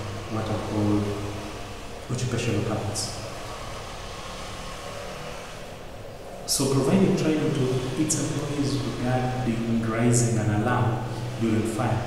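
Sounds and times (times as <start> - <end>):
low hum and hiss: 0.0 - 12.0.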